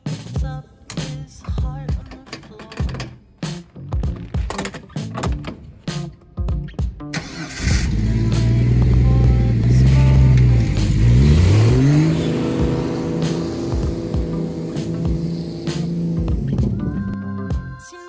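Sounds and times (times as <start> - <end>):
jeep engine revving: 7.2 - 17.2.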